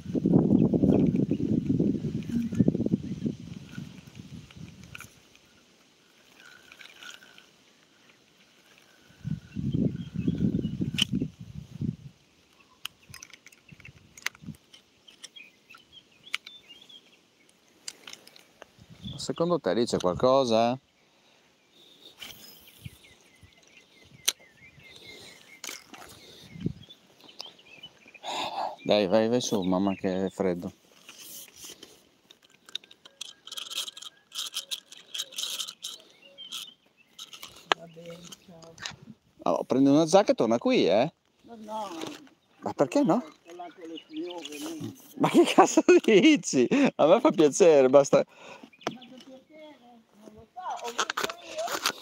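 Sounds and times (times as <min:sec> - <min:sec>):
phone microphone handling noise: 0:00.5 - 0:05.2
faint bird chirps: 0:02.2 - 0:03.8, 0:06.2 - 0:11.5, 0:12.5 - 0:14.0, 0:20.8 - 0:31.8, 0:32.8 - 0:38.8
fishing reel scraping and clicking: 0:03.5 - 0:09.1, 0:31.0 - 0:38.5.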